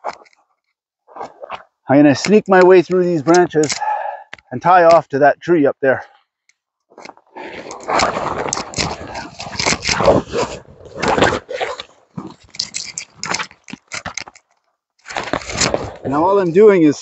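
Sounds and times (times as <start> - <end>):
branches rustling against jacket: 6.9 - 16.7.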